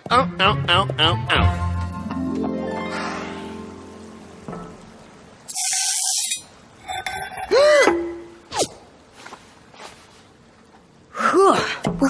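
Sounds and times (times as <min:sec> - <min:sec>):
cartoon background music: 0:00.1 - 0:04.4.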